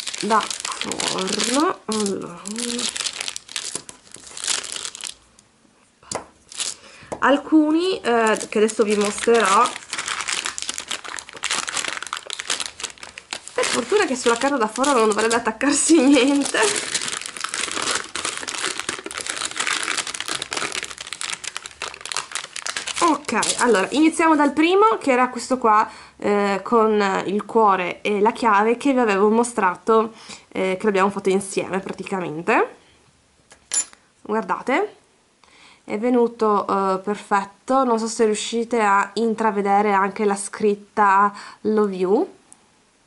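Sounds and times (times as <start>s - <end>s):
baking paper crinkling: 0.0s - 5.3s, 6.5s - 6.9s, 8.0s - 24.6s.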